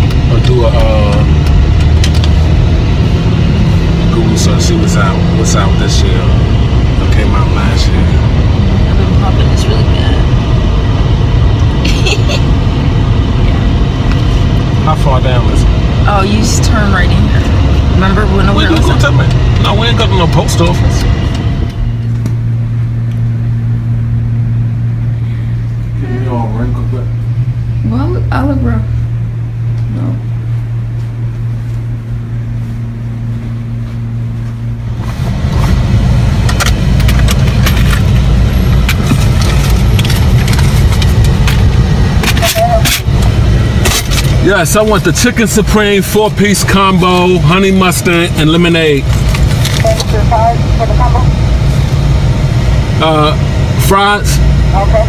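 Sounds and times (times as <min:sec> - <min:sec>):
car cabin road rumble: 0:00.0 - 0:55.0
steady low hum: 0:00.0 - 0:55.0
voices talking: 0:04.0 - 0:10.4, 0:14.8 - 0:21.2, 0:25.3 - 0:29.0, 0:42.3 - 0:43.1, 0:49.8 - 0:51.4, 0:53.0 - 0:55.0.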